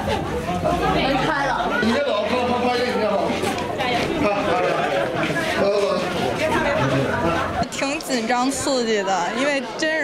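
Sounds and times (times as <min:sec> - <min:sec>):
people talking over one another: 0:00.0 - 0:10.0.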